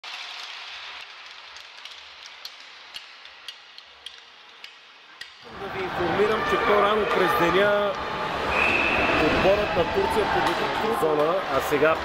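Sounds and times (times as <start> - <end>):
rink and crowd noise: 0.0 - 12.0.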